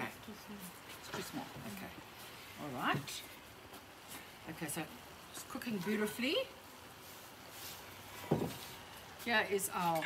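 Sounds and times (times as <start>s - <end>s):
dull thump: 8.3s - 8.6s.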